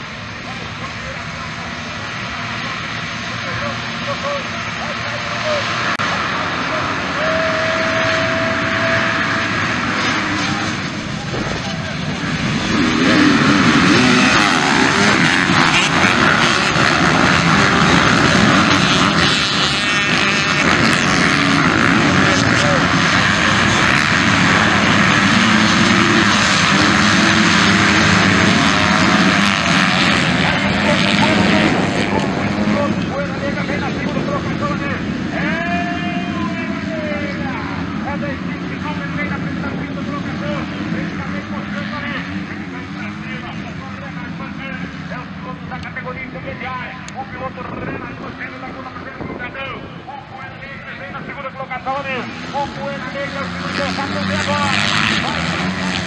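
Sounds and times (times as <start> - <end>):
dirt bikes revving: 0.0 - 56.0.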